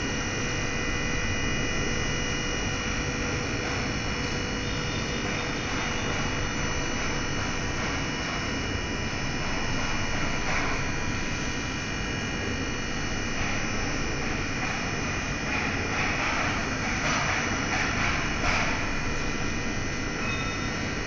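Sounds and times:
hydraulic motor and pump hum: 0:00.0 - 0:21.0.

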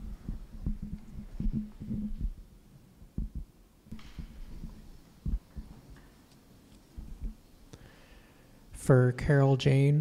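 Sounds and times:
microphone handling bumps: 0:00.0 - 0:02.5, 0:03.1 - 0:06.0.

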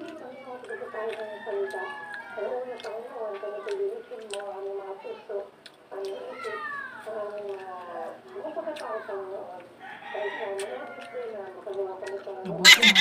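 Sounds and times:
rooster crowing: 0:00.8 - 0:02.6, 0:09.8 - 0:11.4, 0:12.6 - 0:13.0.

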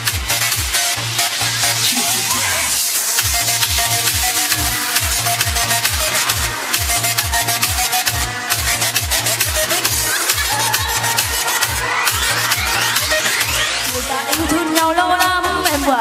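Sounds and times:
electronic dance music: 0:00.0 - 0:16.0
rising synth sweep: 0:01.4 - 0:14.2.

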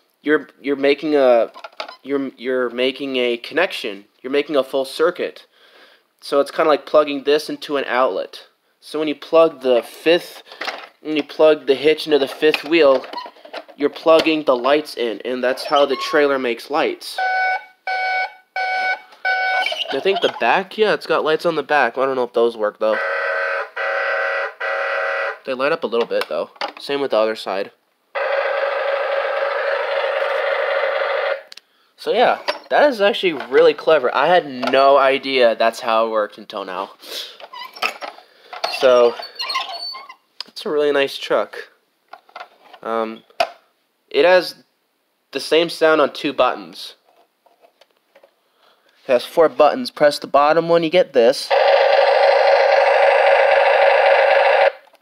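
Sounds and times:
toy truck engine sound effect: 0:28.2 - 0:31.4, 0:51.5 - 0:54.8.

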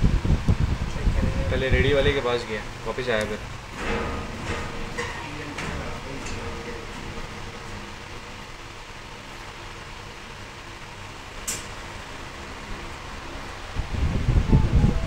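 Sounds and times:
low rumbles and thumps: 0:00.0 - 0:09.5
fan humming: 0:00.0 - 0:15.0
sharp click: 0:11.4 - 0:11.8.

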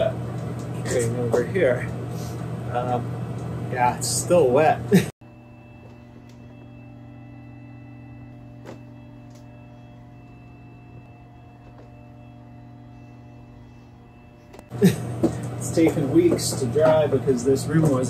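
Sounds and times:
low hum of held tones: 0:00.0 - 0:18.0
thin high whine: 0:00.0 - 0:18.0.

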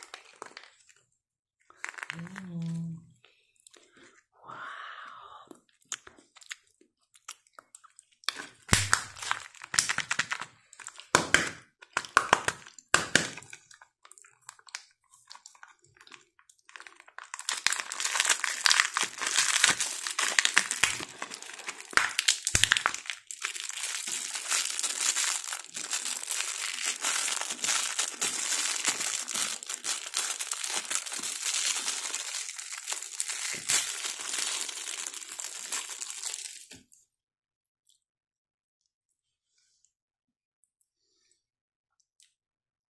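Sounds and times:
thin plastic wrapping crinkling: 0:00.0 - 0:01.0, 0:01.7 - 0:02.6, 0:08.4 - 0:11.1, 0:16.7 - 0:36.8
sharp plastic cracks and snaps: 0:08.3 - 0:10.5, 0:11.1 - 0:13.6, 0:18.5 - 0:21.2, 0:21.9 - 0:23.2.

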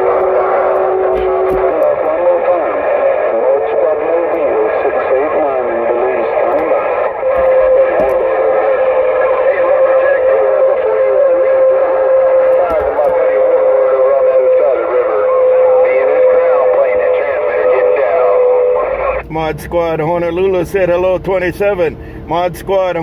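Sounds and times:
radio whistle tone: 0:00.0 - 0:19.2
garbled radio voices: 0:00.0 - 0:23.0.

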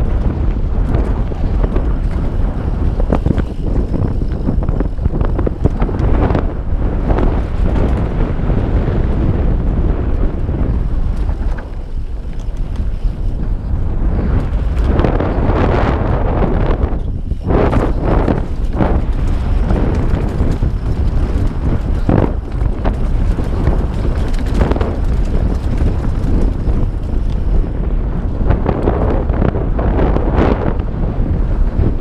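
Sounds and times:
bike knocks and rattles: 0:00.0 - 0:29.6
tyres rumbling on dirt: 0:00.0 - 0:32.0
wind buffeting microphone: 0:00.0 - 0:32.0.

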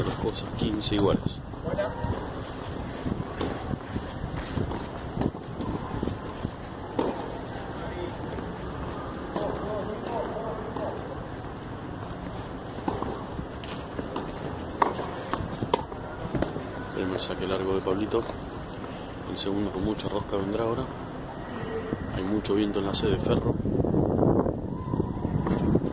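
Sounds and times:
steady wind-like noise: 0:00.0 - 0:25.9
distant talk: 0:06.8 - 0:11.4
tennis ball knocks: 0:06.9 - 0:07.3.

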